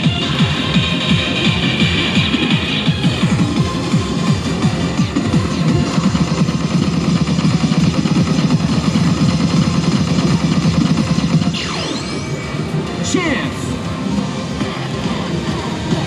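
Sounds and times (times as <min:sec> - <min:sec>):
busy gaming parlor din: 0:00.0 - 0:16.0
electronic slot machine music: 0:00.0 - 0:16.0
swooping sound effect: 0:04.8 - 0:12.7.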